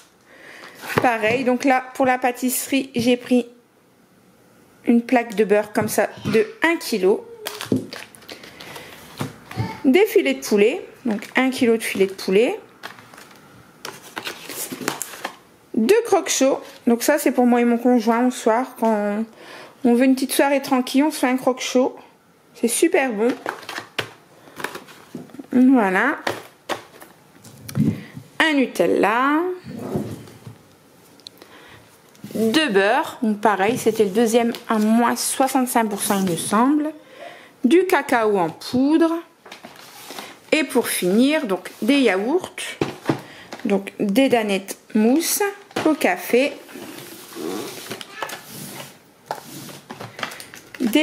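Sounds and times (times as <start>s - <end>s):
packaging rustling: 7.4s - 9.6s, 11.2s - 15.4s, 23.2s - 25.4s, 26.2s - 27.5s, 39.4s - 40.4s, 46.6s - 51.0s
packages set down on table: 23.3s - 25.3s, 42.8s - 43.7s.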